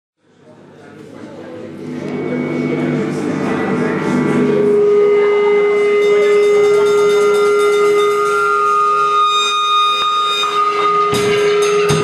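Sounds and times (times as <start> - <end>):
electric guitar feedback drone: 1.0 - 12.0
drum kit hits: 11.0 - 12.0.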